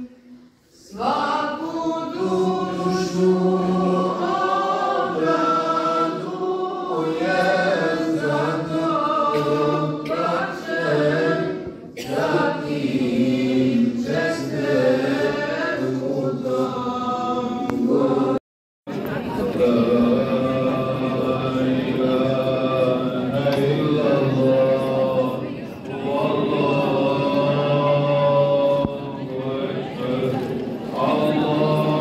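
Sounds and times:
group singing devotional chant: 0.0 - 18.4, 19.2 - 32.0.

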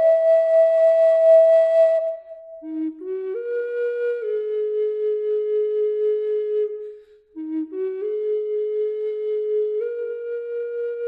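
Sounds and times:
solo flute melody: 0.0 - 11.0.

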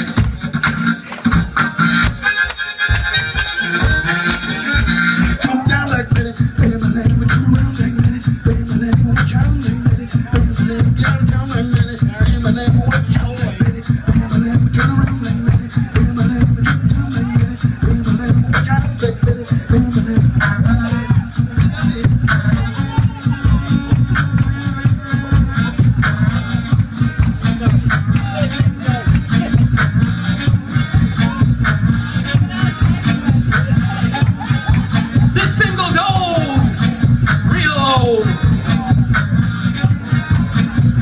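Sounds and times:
beatboxed rhythm: 0.0 - 41.0
blues harmonica chords: 0.0 - 41.0.

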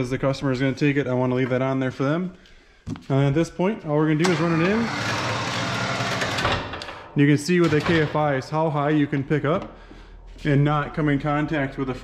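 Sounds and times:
electric winch motor whirring: 4.2 - 6.7.

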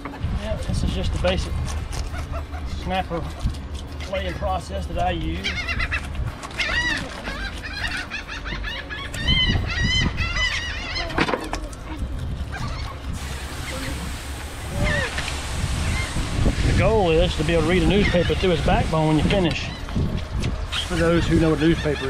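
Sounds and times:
seagulls squawking: 1.9 - 3.2, 5.2 - 22.0.

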